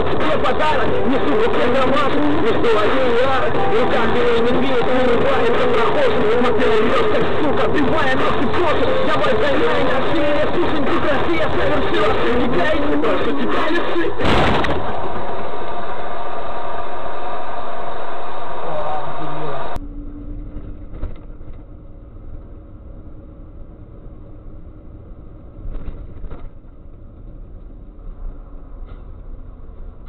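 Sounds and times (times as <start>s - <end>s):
person speaking: 0.0s - 14.3s.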